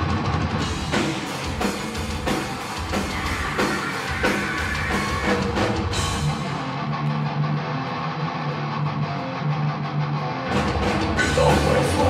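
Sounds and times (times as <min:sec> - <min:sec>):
drums and cymbals: 0:00.0 - 0:06.8, 0:10.5 - 0:12.0
electric guitar riff: 0:00.0 - 0:12.0
heavy metal band playing live: 0:00.0 - 0:12.0.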